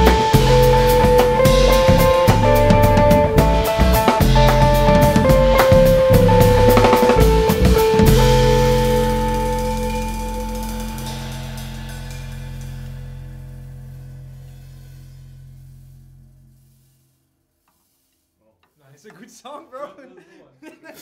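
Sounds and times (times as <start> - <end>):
final chord ringing: 0.0 - 13.4
rock trio playing: 0.0 - 16.0
cymbal wash: 0.0 - 17.0.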